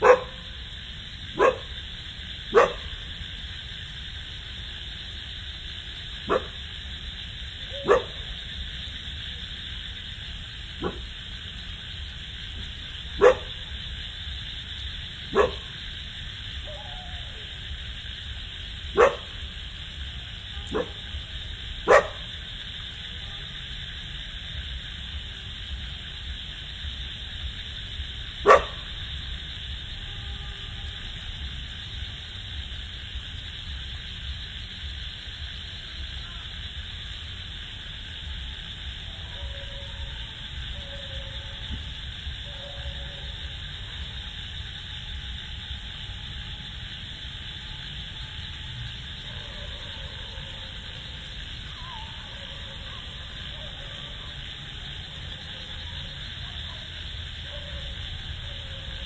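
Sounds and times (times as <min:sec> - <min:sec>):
dog barking: 0:00.0 - 0:00.6, 0:01.3 - 0:01.8, 0:02.5 - 0:03.0, 0:06.2 - 0:06.6, 0:07.7 - 0:08.4, 0:10.8 - 0:11.1, 0:13.2 - 0:13.7, 0:15.3 - 0:15.7, 0:18.9 - 0:19.4, 0:20.6 - 0:21.1, 0:21.8 - 0:22.3, 0:28.4 - 0:28.9, 0:49.2 - 0:51.0, 0:57.4 - 0:58.0
steady high hiss: 0:00.0 - 0:59.0.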